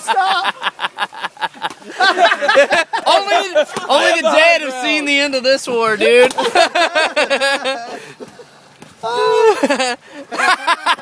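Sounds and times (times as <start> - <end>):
man laughing loudly: 0.0 - 3.9, 6.3 - 11.0.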